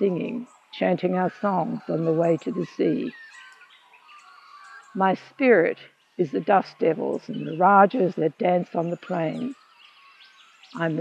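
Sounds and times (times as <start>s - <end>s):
birds chirping: 0.0s - 11.0s
soft outdoor hiss: 0.0s - 11.0s.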